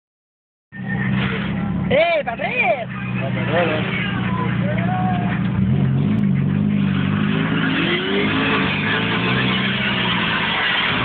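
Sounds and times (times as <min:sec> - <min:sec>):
car engines idling: 0:00.8 - 0:11.0.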